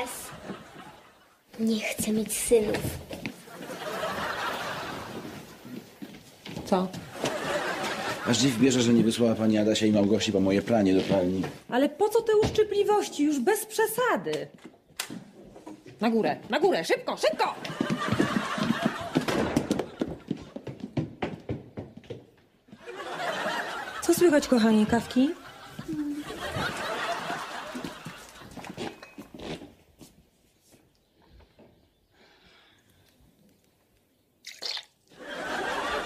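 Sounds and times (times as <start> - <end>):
studio audience laughter: 0.0 - 1.4, 3.5 - 5.5, 7.1 - 9.0, 17.6 - 20.3, 22.8 - 28.8, 35.2 - 36.0
people running on tiled floor: 2.9 - 8.2, 17.2 - 24.3, 25.3 - 29.0
slurp from a teacup: 34.4 - 35.0.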